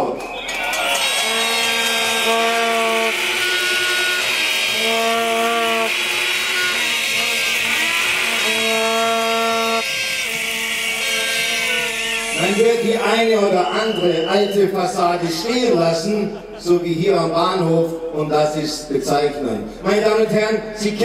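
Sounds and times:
whistling: 0.0 - 5.1, 12.5 - 15.1
buzzy plastic horns: 0.0 - 15.5
crowd noise: 0.0 - 21.0.

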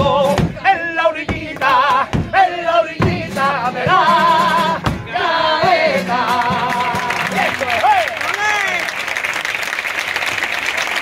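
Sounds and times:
strummed guitar: 0.0 - 7.9
men singing with vibrato: 0.0 - 8.0.

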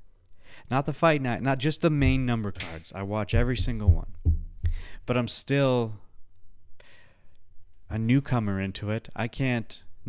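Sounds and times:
man speaking: 0.7 - 4.2, 5.0 - 6.0, 7.9 - 9.9
man breathing into microphone: 4.6 - 5.1, 6.8 - 7.4.

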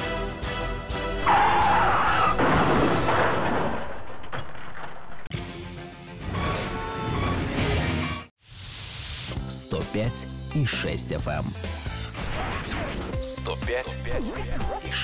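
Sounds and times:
car crash: 1.3 - 5.4.

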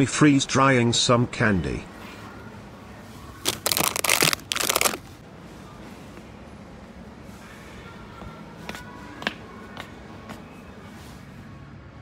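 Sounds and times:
plastic bags crinkling: 3.4 - 5.1.

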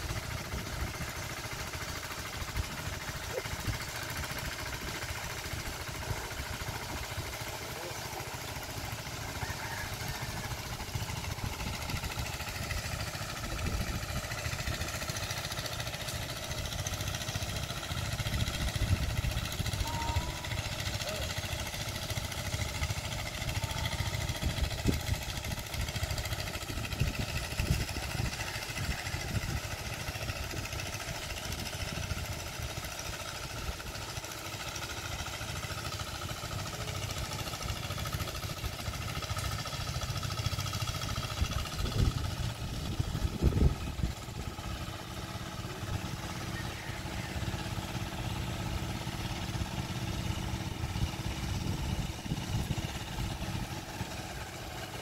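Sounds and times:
small tractor engine running: 0.0 - 55.0
wind rumble on microphone: 41.8 - 44.2.

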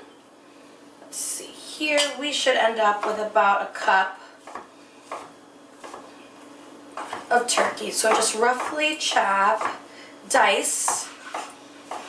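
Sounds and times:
knife striking wooden cutting board: 11.0 - 12.0.

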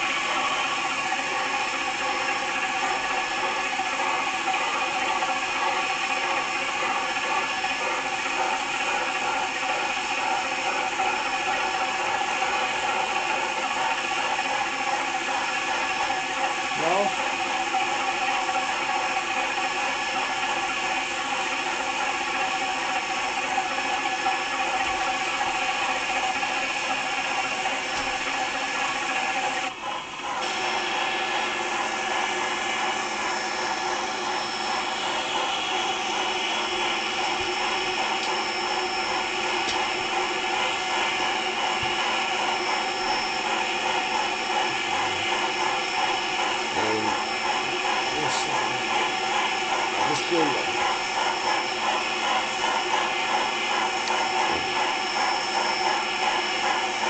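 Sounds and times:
toy train motor whirring: 31.4 - 57.0.

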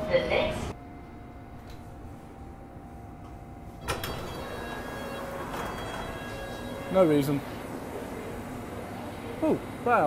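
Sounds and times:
train doors clunking: 3.8 - 6.6
sliding train doors opening: 3.8 - 6.7.

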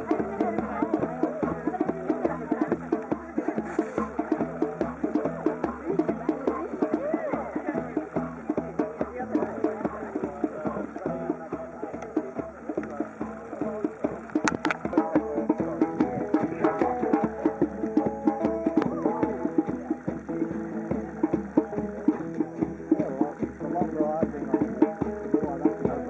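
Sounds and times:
hand drum fast rhythm: 0.0 - 26.0
music: 0.0 - 26.0
voices: 0.0 - 26.0.

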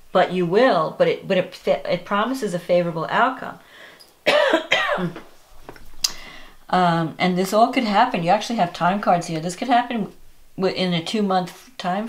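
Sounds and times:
woman clearing her throat: 4.3 - 5.2.

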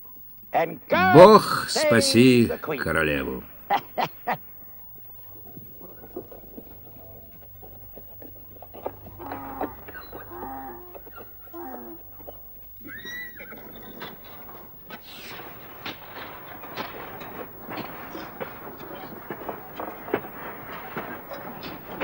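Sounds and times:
steady low hum: 0.0 - 22.0
cattle lowing: 3.5 - 22.0
higher animal call: 8.8 - 15.5.

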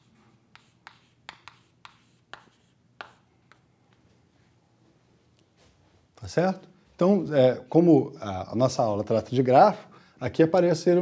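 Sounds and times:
chalk writing on chalkboard: 0.0 - 3.7.

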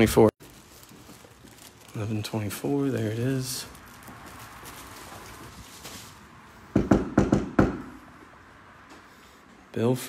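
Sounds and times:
knuckles knocking on door: 6.8 - 7.8.

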